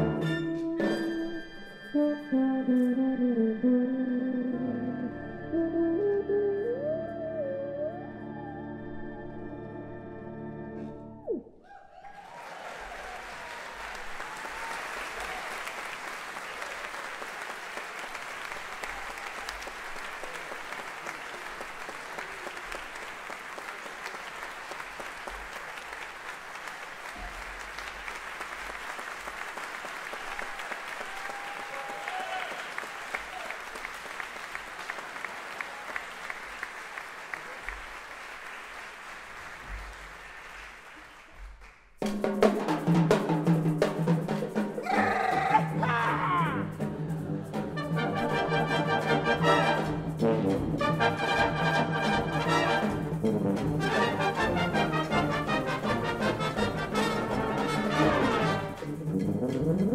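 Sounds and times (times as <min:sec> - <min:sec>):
audience applause: 0:12.0 - 0:42.0, 0:44.4 - 0:46.5.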